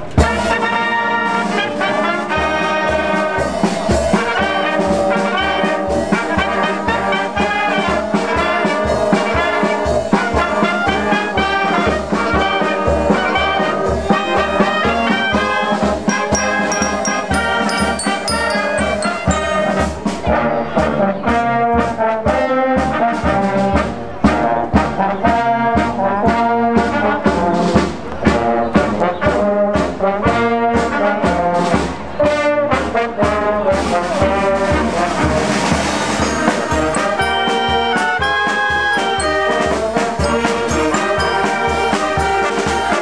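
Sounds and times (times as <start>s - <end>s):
wind band playing: 0.0s - 43.0s
glockenspiel notes: 16.0s - 20.2s, 36.1s - 43.0s.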